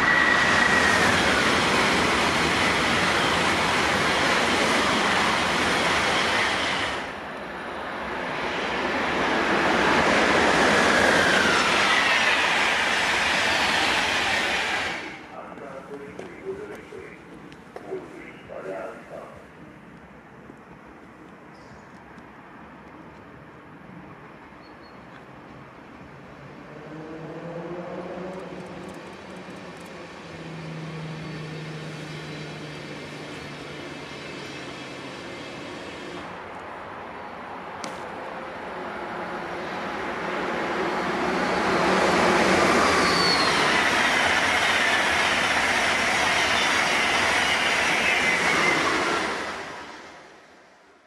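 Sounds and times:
train passing: 0.0s - 51.0s.

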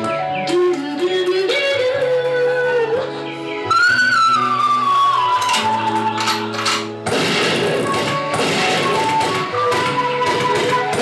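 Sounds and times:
low backing music: 0.0s - 11.0s
woman singing: 0.3s - 4.2s.

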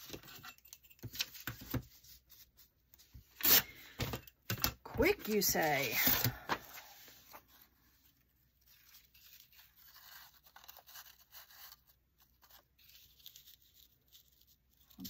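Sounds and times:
paper rustling: 5.0s - 15.0s.

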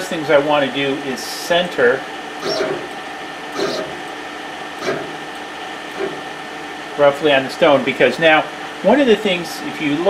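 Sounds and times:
laser cutter machine hum: 0.0s - 10.0s.

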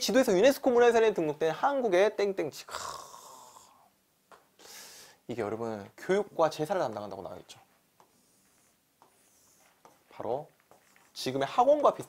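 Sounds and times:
man breathing: 2.7s - 3.9s, 4.6s - 5.2s.

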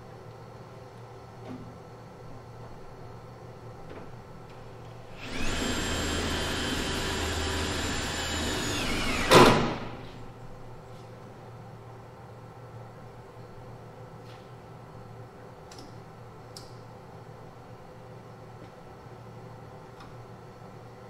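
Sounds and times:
power tool whining: 5.2s - 10.1s.

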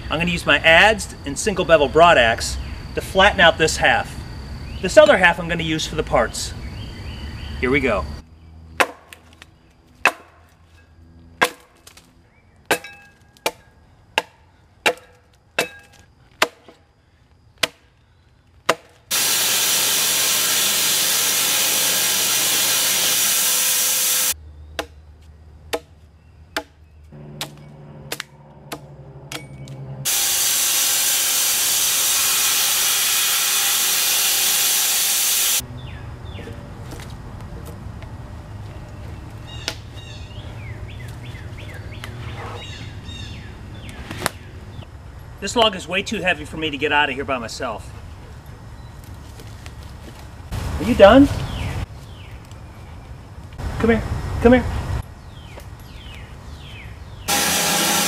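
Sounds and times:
axe chopping into log: 8.8s - 9.2s, 10.0s - 10.4s, 11.4s - 12.0s, 12.7s - 13.6s, 14.2s - 16.8s, 17.6s - 17.8s, 18.6s - 19.0s, 26.6s - 26.8s, 27.4s - 29.5s
loud even hiss: 19.1s - 24.4s, 30.0s - 35.6s.

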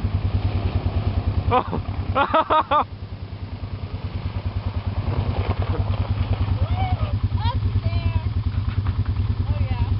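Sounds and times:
atv engine puttering: 0.0s - 9.9s.

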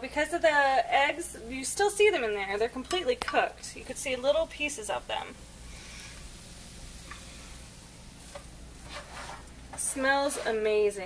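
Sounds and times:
rice sizzling in a skillet: 1.8s - 11.0s
spatula scraping and tapping: 8.2s - 10.7s.

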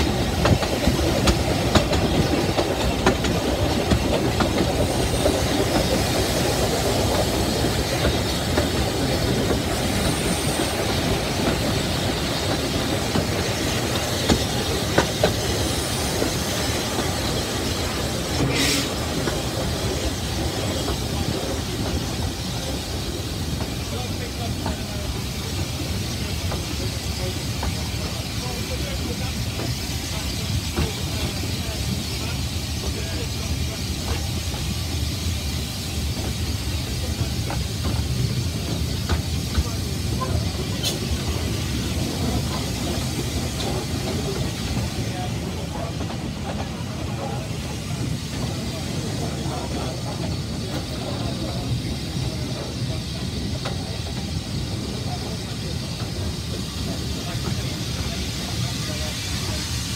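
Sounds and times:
railway carriage rumble and rattle: 0.0s - 59.9s.

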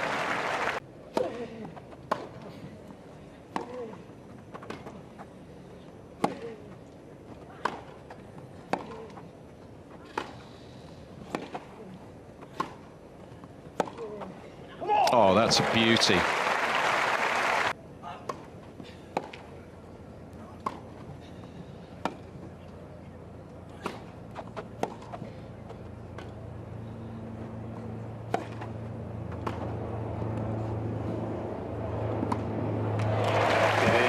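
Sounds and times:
crowd applause: 0.0s - 0.8s, 15.1s - 17.7s, 33.0s - 34.0s
crowd noise: 0.0s - 0.8s, 15.1s - 17.7s, 32.4s - 34.0s
racket striking tennis ball: 11.3s - 11.6s, 23.8s - 25.2s, 28.2s - 29.8s, 32.1s - 32.6s.

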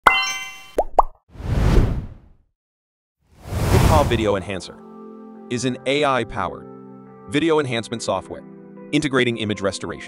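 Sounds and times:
rising whoosh: 3.4s - 4.4s.

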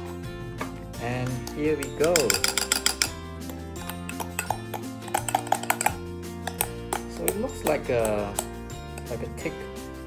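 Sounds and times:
background music: 0.0s - 10.0s
spoon clinking against glass: 1.3s - 9.3s.

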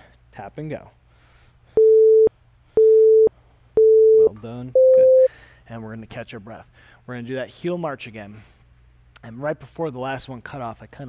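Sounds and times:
electronic countdown beeps: 1.8s - 5.3s.

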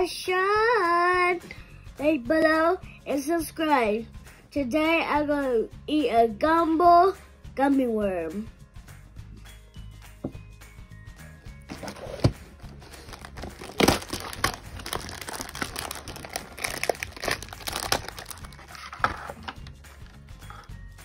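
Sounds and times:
background music: 0.0s - 21.0s
cardboard box tearing: 11.7s - 19.6s
plastic wrapper crinkling: 11.7s - 20.2s.

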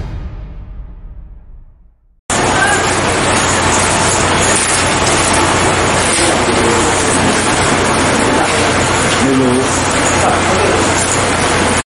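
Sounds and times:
low hum: 0.0s - 11.8s
bus engine running: 2.3s - 11.8s.

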